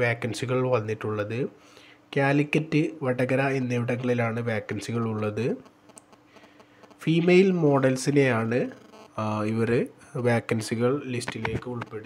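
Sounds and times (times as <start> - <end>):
low steady hum: 0.0 - 12.0
person speaking: 2.2 - 5.7, 7.0 - 12.0
faint clicks: 5.9 - 7.0.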